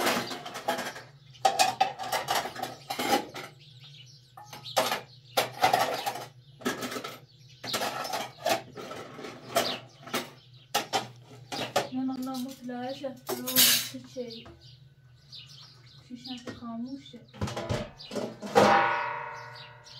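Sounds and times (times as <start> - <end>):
dishes clinking and knocking: 0.0 - 3.6, 4.4 - 14.0, 17.4 - 19.4.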